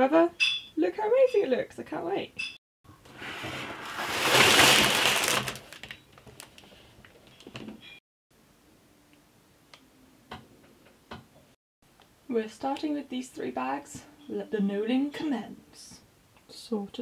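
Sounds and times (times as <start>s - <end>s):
cardboard box rustling scrape: 3.1s - 5.6s
plastic bags crinkling: 3.6s - 7.6s.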